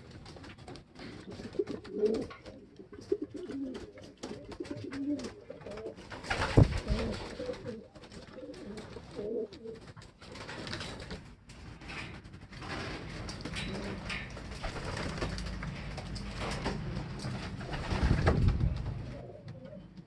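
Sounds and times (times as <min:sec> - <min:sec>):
pigeons cooing: 0:01.0 - 0:10.5, 0:13.6 - 0:20.0.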